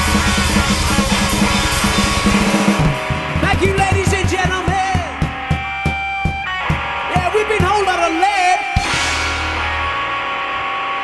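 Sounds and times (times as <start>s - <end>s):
drum kit: 0.0s - 9.8s
distorted electric guitar: 0.0s - 11.0s.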